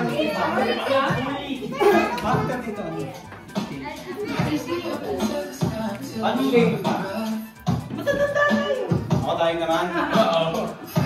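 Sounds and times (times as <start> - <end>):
children's voices: 0.0 - 7.3
people talking over one another: 0.0 - 7.3.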